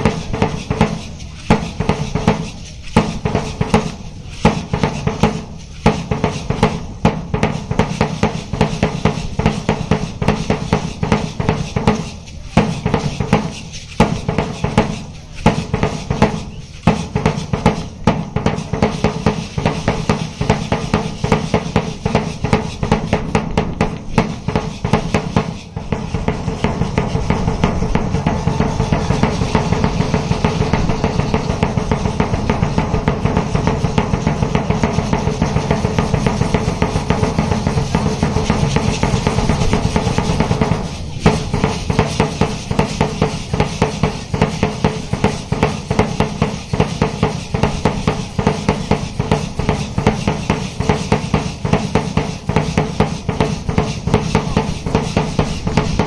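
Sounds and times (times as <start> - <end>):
marching drum beating and rolling: 0.0 - 56.0.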